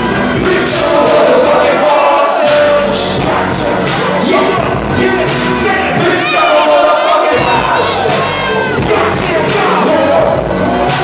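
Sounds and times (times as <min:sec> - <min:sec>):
live hip hop music: 0:00.0 - 0:11.0.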